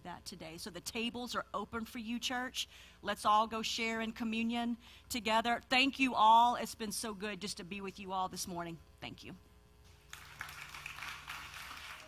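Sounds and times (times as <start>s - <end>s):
audience applauding: 10.1s - 12.0s.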